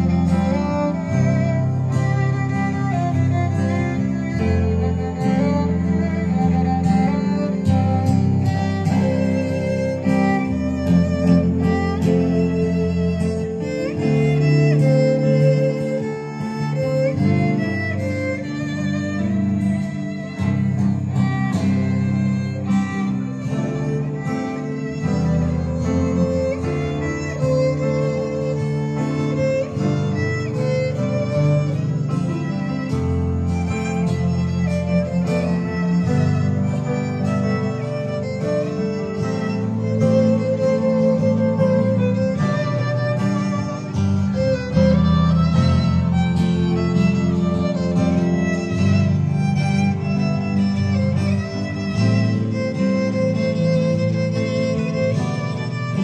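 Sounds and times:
acoustic guitar: 0.0s - 56.0s
cello: 0.0s - 56.0s
grand piano: 0.0s - 56.0s
violin: 0.0s - 56.0s.

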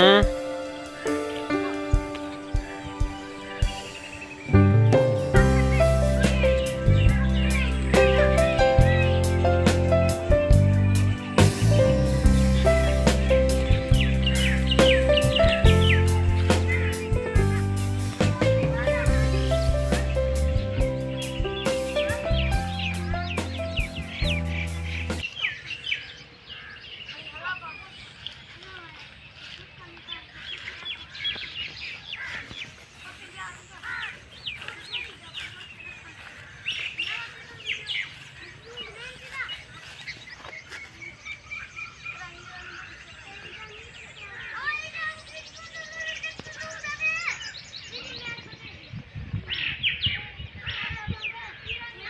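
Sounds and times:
background music with steady beat: 0.0s - 25.2s
bird chirps: 0.0s - 52.0s.

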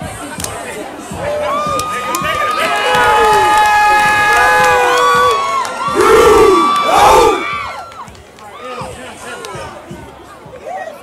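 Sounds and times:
crowd screaming and cheering: 1.0s - 9.6s
loud yells close by: 2.6s - 7.8s.

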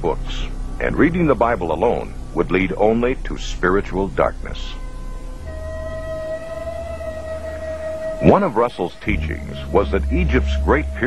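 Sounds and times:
low hum: 0.0s - 11.0s
synthesizer drone: 0.0s - 11.0s.

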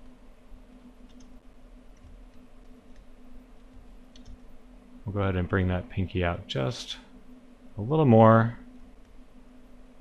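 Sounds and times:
steady low hum: 0.0s - 10.0s
faint clicks: 1.0s - 4.5s.

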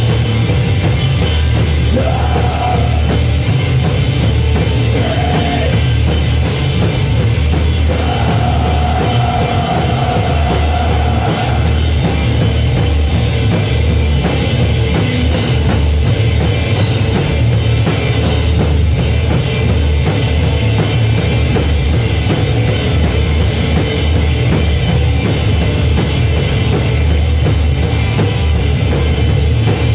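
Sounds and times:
bass guitar: 0.0s - 29.9s
drum kit: 0.0s - 29.9s
live rock band playing: 0.0s - 29.9s.

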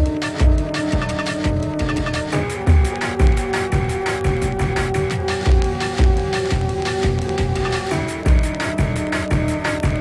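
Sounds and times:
breakbeat drums: 0.0s - 10.0s.

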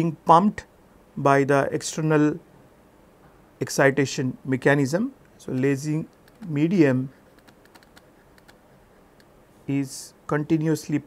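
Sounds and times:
stylus tapping on tablet screen: 6.1s - 6.5s, 7.3s - 8.6s.

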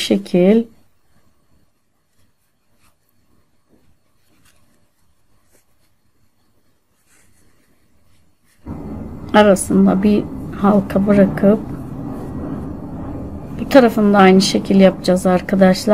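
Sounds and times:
yarn rustling and scratching: 1.8s - 8.7s.

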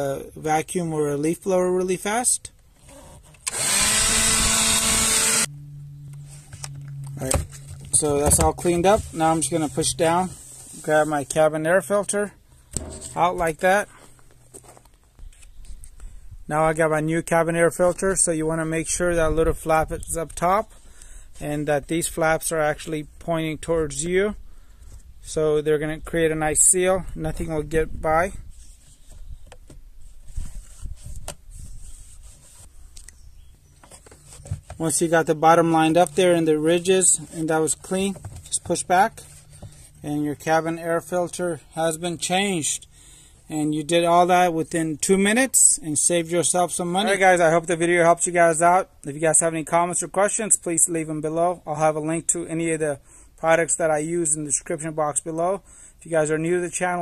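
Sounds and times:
vacuum motor whining: 3.5s - 5.5s
low hum: 3.5s - 10.8s
filter frame scraping against plastic: 6.1s - 11.4s, 12.6s - 15.6s, 33.8s - 35.2s, 35.8s - 40.1s.

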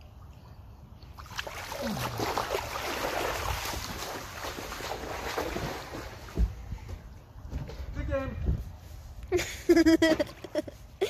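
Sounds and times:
slush splashing and sloshing: 1.1s - 6.4s
wind buffeting microphone: 3.1s - 8.9s.

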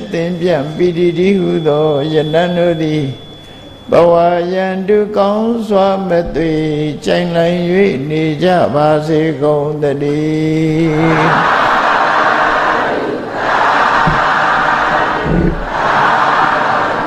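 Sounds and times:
monk chanting: 0.0s - 11.8s, 15.0s - 16.0s
congregation chanting: 3.9s - 17.0s.

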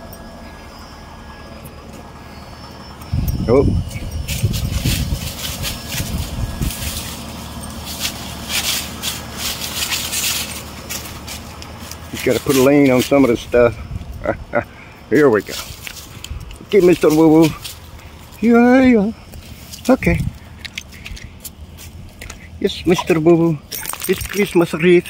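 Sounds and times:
dry leaves crunching underfoot: 3.9s - 14.1s, 15.4s - 24.7s.

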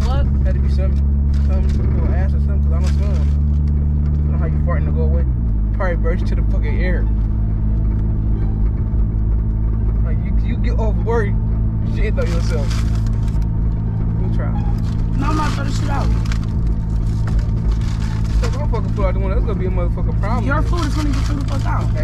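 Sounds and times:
voices talking: 0.0s - 3.4s, 4.2s - 7.6s, 9.7s - 16.6s, 17.6s - 22.0s
car engine and road noise: 0.0s - 22.0s.

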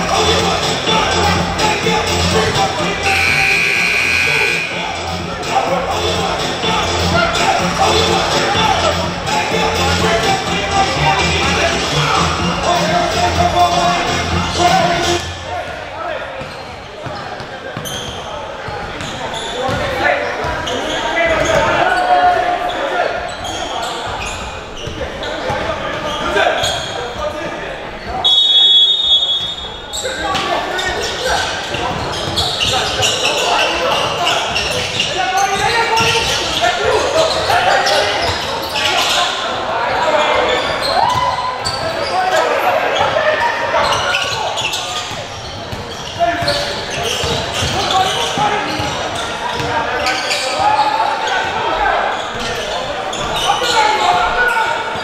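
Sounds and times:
crowd chatter: 0.0s - 55.0s
high-pitched squeal: 3.0s - 5.1s
basketball bouncing on court: 18.8s - 19.9s, 45.0s - 49.7s.

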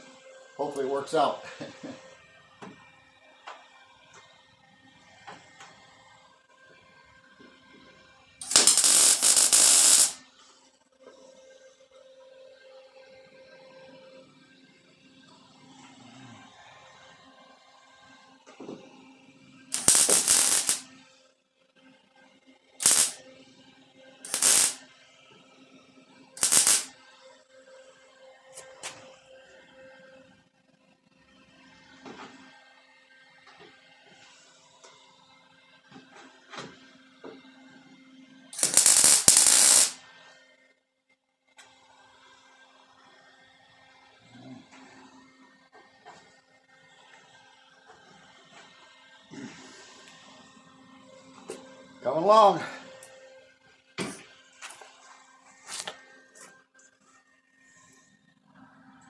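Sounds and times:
welder crackling: 8.4s - 10.2s, 19.7s - 20.8s, 22.8s - 23.2s, 24.3s - 24.8s, 26.4s - 26.9s, 38.6s - 40.0s.

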